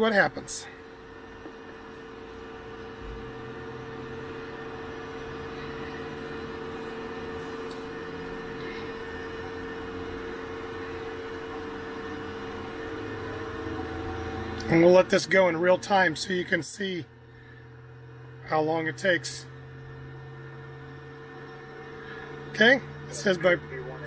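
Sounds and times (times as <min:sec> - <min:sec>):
avionics electrical hum: 0:00.0 - 0:24.0
low hum: 0:00.0 - 0:24.0
steady mid-pitched tone: 0:01.9 - 0:24.0.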